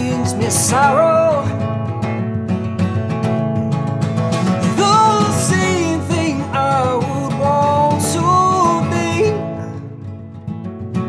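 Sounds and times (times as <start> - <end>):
acoustic guitar strumming: 0.0 - 11.0.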